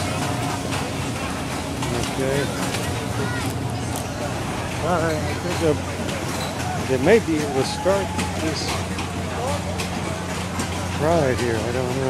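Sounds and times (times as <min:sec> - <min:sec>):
faint voices: 0:00.0 - 0:12.0
low machine hum: 0:00.0 - 0:12.0.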